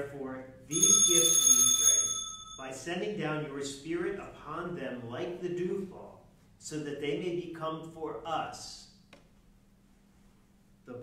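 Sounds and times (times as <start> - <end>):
altar bell ringing: 0.7 - 2.9.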